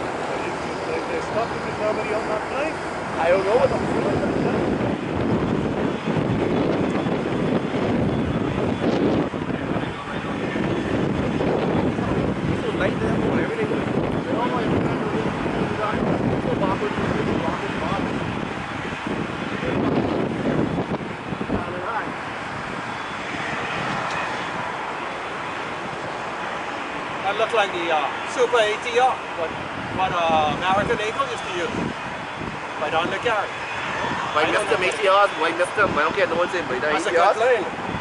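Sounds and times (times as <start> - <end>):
jet engines in reverse thrust: 0.0 - 38.0.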